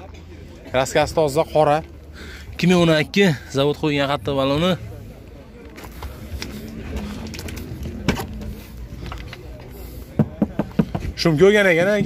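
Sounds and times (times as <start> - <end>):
background voices: 1.5 - 12.0
man talking: 2.5 - 5.1.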